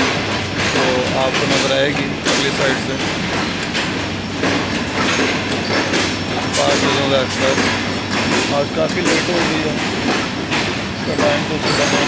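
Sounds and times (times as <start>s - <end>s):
train wheels rumbling on track: 0.0s - 12.0s
wheels clicking over rail joints: 0.0s - 12.0s.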